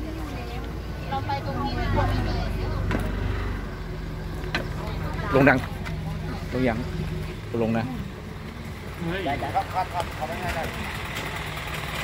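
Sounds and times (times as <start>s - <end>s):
voices talking: 0.0s - 11.7s
diesel truck engine idling: 0.0s - 12.0s.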